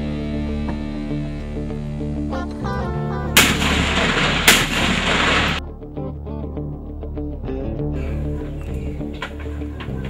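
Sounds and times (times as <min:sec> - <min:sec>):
background music: 0:00.0 - 0:10.0
explosion blasts: 0:03.4 - 0:05.6.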